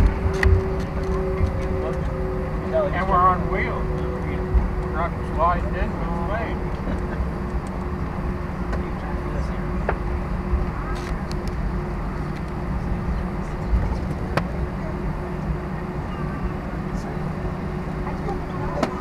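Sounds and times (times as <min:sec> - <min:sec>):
constant cabin hum: 0:00.0 - 0:19.0
engine and wheel rumble: 0:00.0 - 0:19.0.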